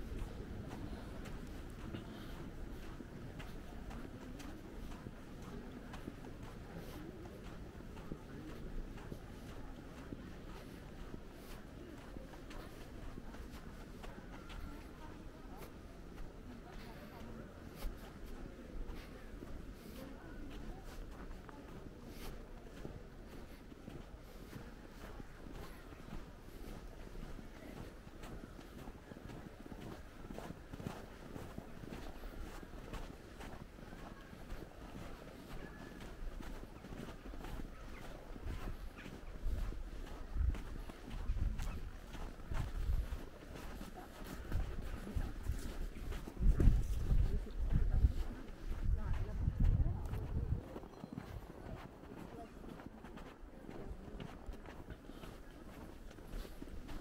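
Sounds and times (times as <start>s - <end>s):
footsteps crunching on snow: 0.0s - 57.0s
thumps and rumble on microphone: 46.1s - 50.6s.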